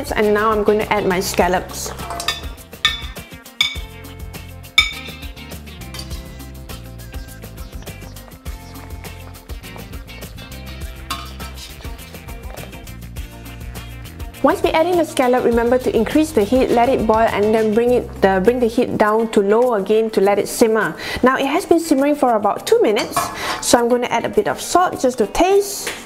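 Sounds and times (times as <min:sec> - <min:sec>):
background guitar music: 0:00.0 - 0:25.8
metal spatula clinking on plate and wok: 0:01.8 - 0:04.0, 0:04.8 - 0:06.3, 0:11.1 - 0:11.6.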